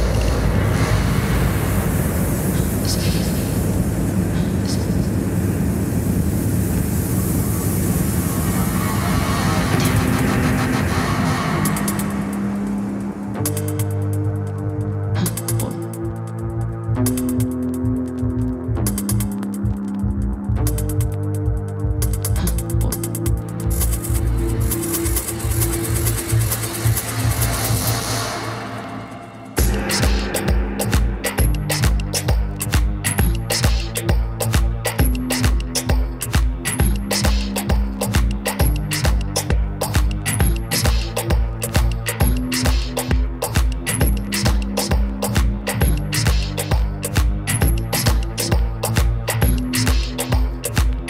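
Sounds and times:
hissing noise: 0.0 - 16.0, 22.0 - 51.0
techno music: 0.0 - 51.0
hi-hat ticks: 11.7 - 27.8, 29.6 - 51.0
steady low bass note: 29.6 - 33.5.

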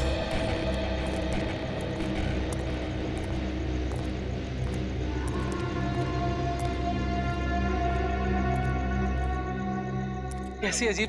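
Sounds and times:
suspenseful drone music: 0.0 - 11.0.

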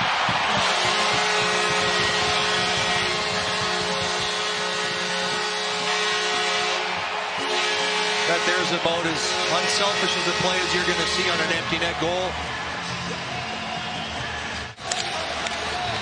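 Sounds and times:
crowd cheering: 0.0 - 16.0
goal horn blast: 0.2 - 12.0.

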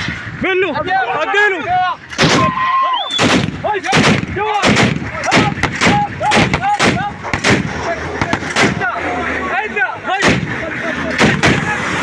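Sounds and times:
shouted calls: 0.4 - 12.0
gunshots: 2.1 - 9.0, 10.1 - 12.0.

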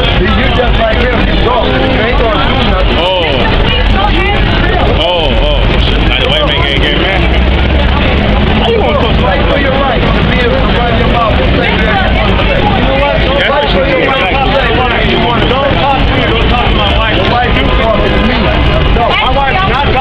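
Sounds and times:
traffic rumble: 0.0 - 20.0
voices talking: 0.0 - 20.0.

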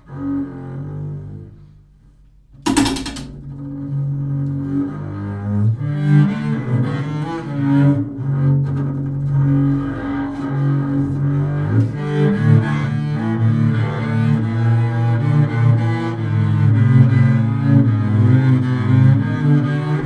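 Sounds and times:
bowed double bass: 0.0 - 20.0.

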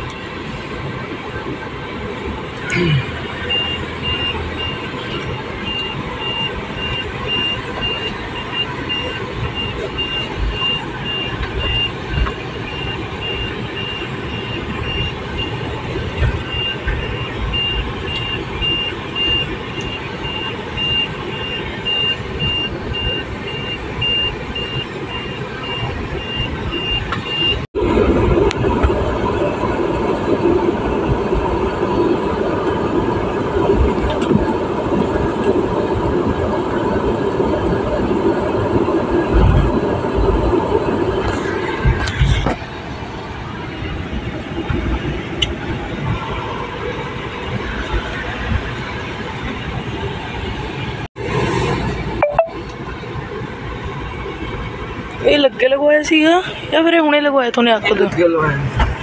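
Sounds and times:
car engine and road noise: 0.0 - 59.0
electronic warning chime beeping: 52.2 - 52.6.

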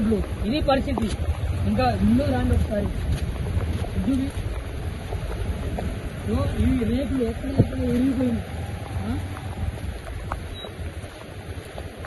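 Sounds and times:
rain: 0.0 - 12.0
steady outdoor hiss: 0.0 - 12.0
wind buffeting microphone: 0.0 - 12.0.

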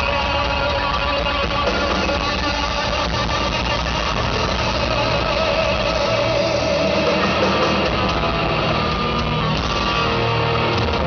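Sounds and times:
bass guitar: 0.0 - 11.0
electric guitars: 0.0 - 11.0
live rock band playing: 0.0 - 11.0.

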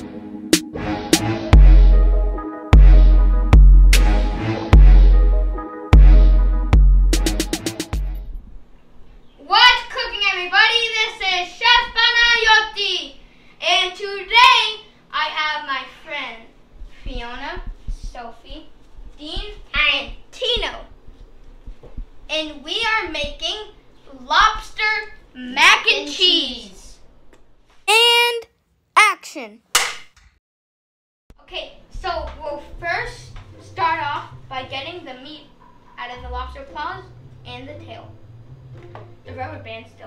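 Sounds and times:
children's voices: 27.9 - 29.6
child singing: 29.0 - 29.6.

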